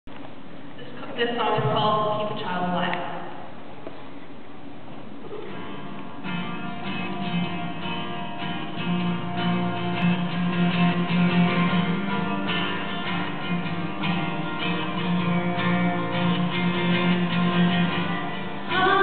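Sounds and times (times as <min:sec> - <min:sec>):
acoustic guitar playing: 0:05.1 - 0:19.0.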